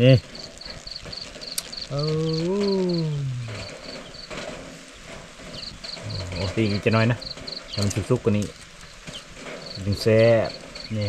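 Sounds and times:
insect chirping: 0.0s - 11.0s
man's voice drawn-out eh: 1.9s - 3.7s.

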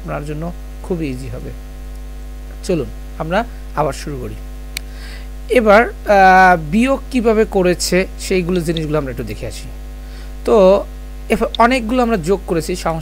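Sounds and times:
low electrical mains hum: 0.0s - 13.0s.

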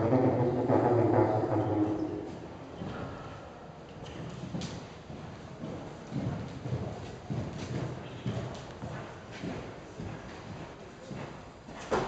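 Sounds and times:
horse hooves cantering on sand: 4.0s - 11.9s.

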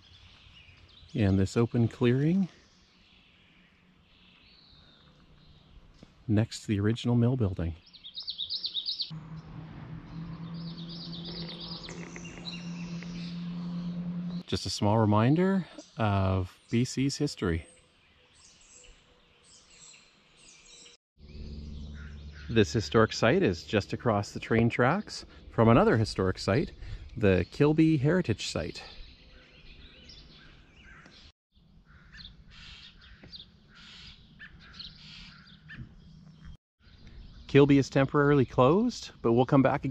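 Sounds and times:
songbird chirping: 0.0s - 39.9s.

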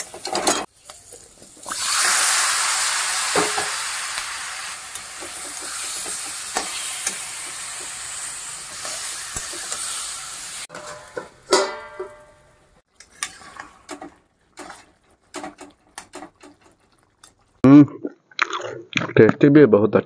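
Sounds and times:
steel lid clattering onto pan: 0.0s - 0.7s, 10.7s - 12.4s
meat sizzling in hot oil: 0.0s - 10.7s
metal spatula scraping: 8.7s - 17.5s.

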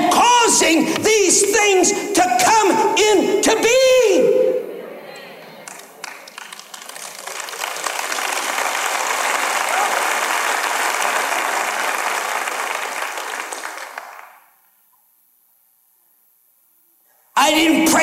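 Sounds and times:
audience applauding: 5.6s - 14.5s.

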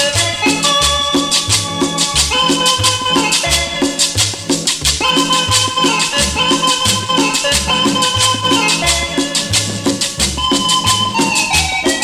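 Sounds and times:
cumbia dance music: 0.0s - 12.0s
rattling shaker percussion: 0.0s - 12.0s
repeating bass line: 0.0s - 12.0s
sustained melody notes: 0.0s - 12.0s.

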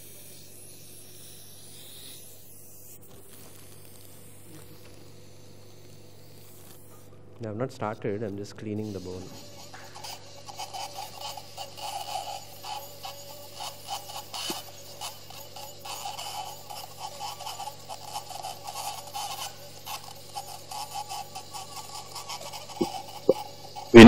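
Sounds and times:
high-speed drill whine: 0.0s - 7.1s, 8.6s - 24.0s.

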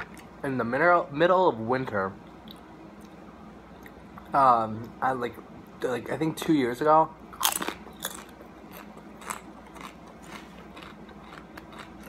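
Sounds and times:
potato chip crunching: 7.4s - 12.0s.

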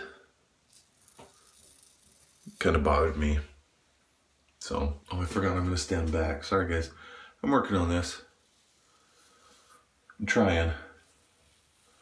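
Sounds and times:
razor scraping scalp: 0.7s - 2.8s.

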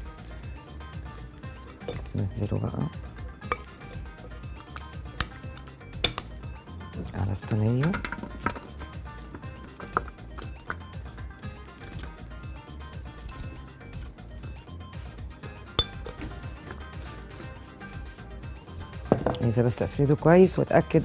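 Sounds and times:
quiet background music: 0.0s - 21.0s
metal spoon clinking on glass bowl: 15.8s - 16.4s.

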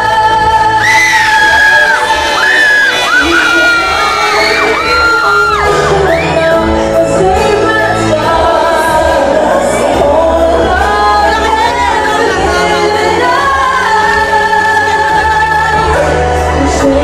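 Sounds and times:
backing music: 0.0s - 17.0s
woman singing into microphone: 0.0s - 17.0s.

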